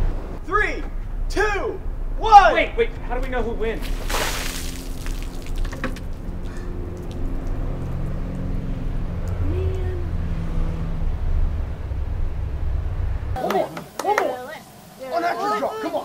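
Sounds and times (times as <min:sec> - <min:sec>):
water splashing onto pavement: 0:03.2 - 0:09.8.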